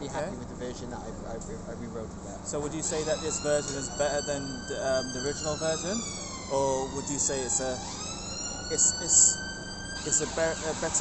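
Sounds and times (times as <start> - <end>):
emergency siren wailing: 2.6 - 11.0.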